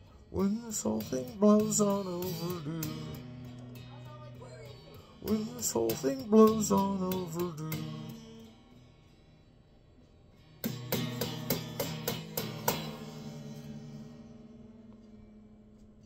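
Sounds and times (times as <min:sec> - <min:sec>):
electric guitar strumming: 0:00.0 - 0:09.4, 0:10.4 - 0:16.0.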